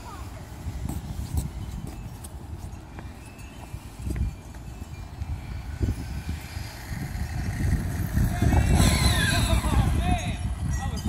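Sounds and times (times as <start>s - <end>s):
electric motor whining: 5.2s - 10.0s.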